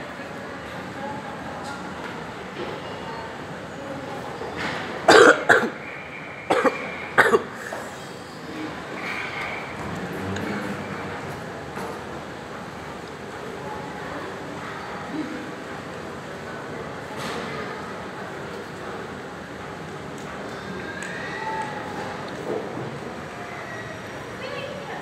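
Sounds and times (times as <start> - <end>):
steady background noise: 0.0 - 25.0
person coughing: 5.1 - 5.8, 6.5 - 7.5.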